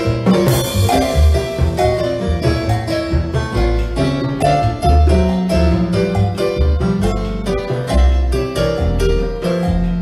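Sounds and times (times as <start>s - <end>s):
electronic keyboard piano: 0.0s - 10.0s
plucked upright double bass: 0.0s - 10.0s.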